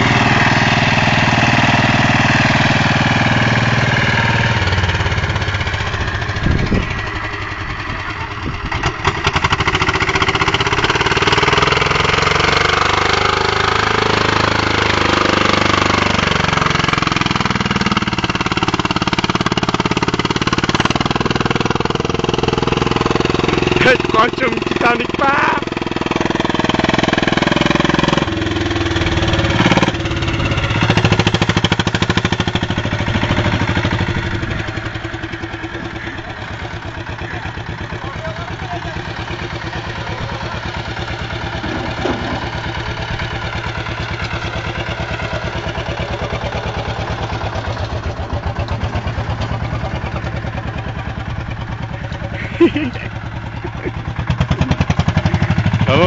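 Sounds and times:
diesel engine chugging: 0.0s - 56.0s.

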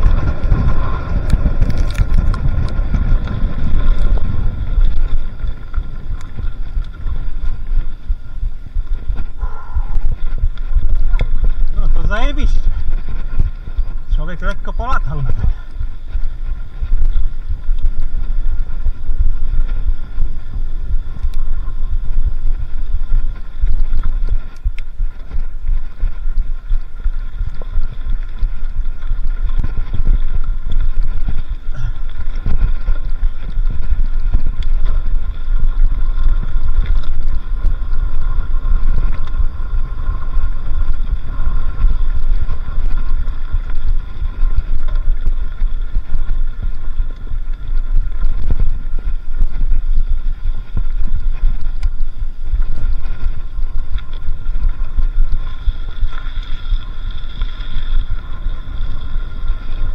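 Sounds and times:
bike rolling over dirt trail: 0.0s - 59.9s
faint steady whine: 0.0s - 59.9s
wind buffeting microphone: 0.0s - 59.9s.

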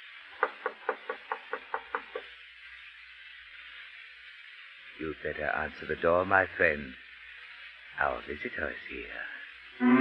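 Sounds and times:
faint recording hiss: 0.0s - 10.0s.

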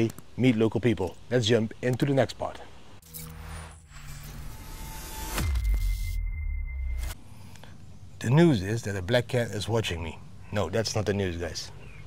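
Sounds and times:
faint background sound: 7.1s - 12.0s.

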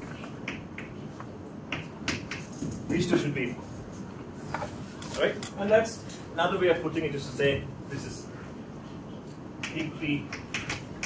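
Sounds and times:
chalk clicking on chalkboard: 1.7s - 4.1s.

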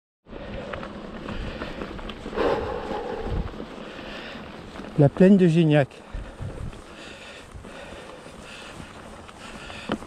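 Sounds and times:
bike tyres rumbling on dirt: 0.3s - 10.0s
bike rattling and knocking: 0.4s - 2.4s, 3.5s - 10.0s
wind buffeting microphone: 0.6s - 5.0s, 6.0s - 10.0s.

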